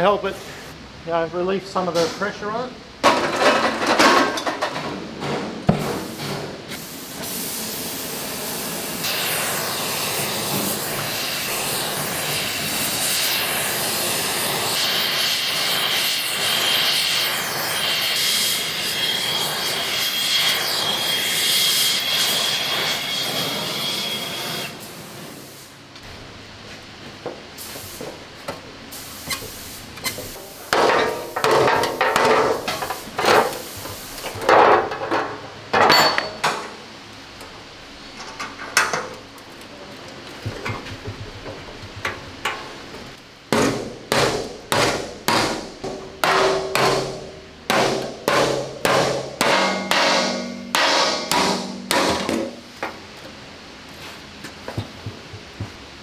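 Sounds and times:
gas torch hissing: 6.0 - 25.8, 27.6 - 28.2, 28.9 - 31.4, 32.5 - 34.4
hammer knocks on sheet steel: 30.7 - 32.7, 43.5 - 52.6.

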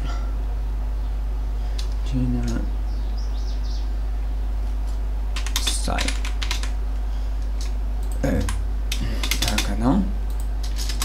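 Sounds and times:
low electrical hum: 0.0 - 11.0
keyboard keystrokes: 7.6 - 11.0.

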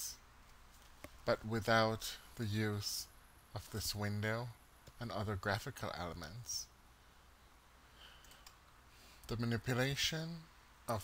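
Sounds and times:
faint computer mouse clicks: 8.2 - 8.6.

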